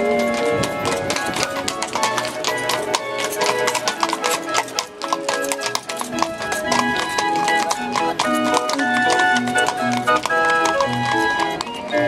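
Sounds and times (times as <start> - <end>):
barrel organ music: 0.0 - 12.0
hooves clip-clopping on stone: 0.0 - 12.0.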